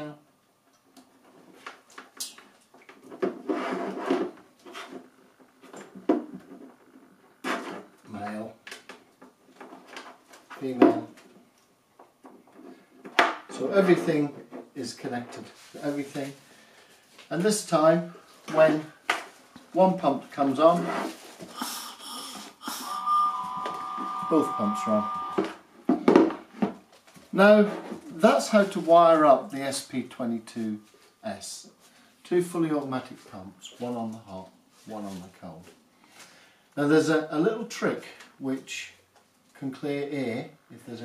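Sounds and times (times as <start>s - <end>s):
person blowing breathy puffs: 21.5s - 23.1s
pump motor whine: 22.7s - 25.6s.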